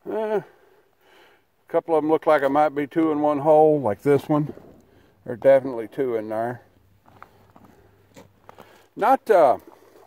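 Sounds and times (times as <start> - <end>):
outdoor background noise: 0.0 - 10.0
footsteps crunching on dry grass: 7.0 - 8.9.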